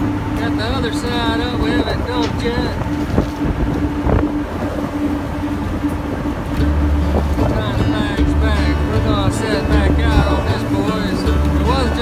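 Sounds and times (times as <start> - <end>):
boat engine running: 0.0 - 12.0
deep low rumble: 0.0 - 12.0
wind on microphone: 0.0 - 12.0.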